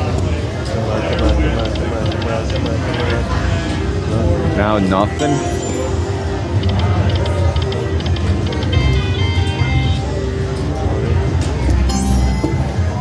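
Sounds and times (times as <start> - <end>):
slot machine electronic music: 4.8 - 13.0
casino din: 5.1 - 9.0
short chime tones: 5.2 - 6.4.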